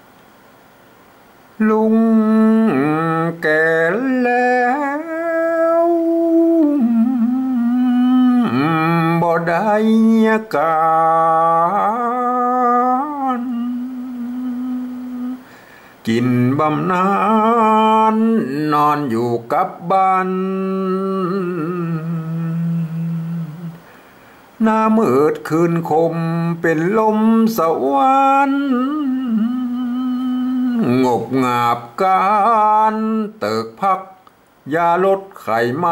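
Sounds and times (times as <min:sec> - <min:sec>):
man singing: 0:01.6 - 0:23.9, 0:24.6 - 0:35.9.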